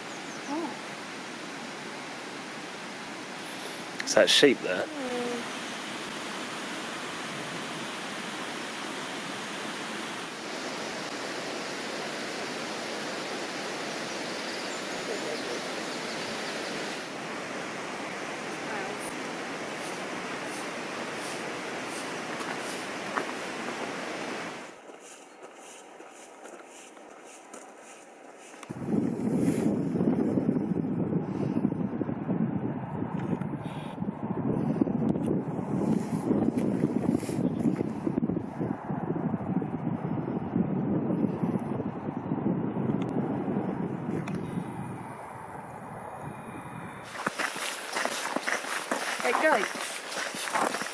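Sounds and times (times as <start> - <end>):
wind buffeting microphone: 28.3 - 50.9.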